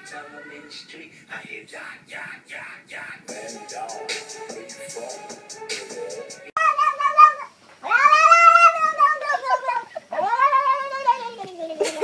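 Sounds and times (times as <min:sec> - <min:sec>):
cat yowling: 0:06.6 - 0:11.4.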